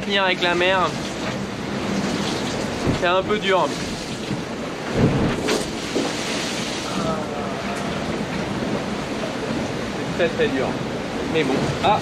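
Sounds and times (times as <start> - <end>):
rushing water: 0.0 - 12.0
wind noise: 1.6 - 10.1.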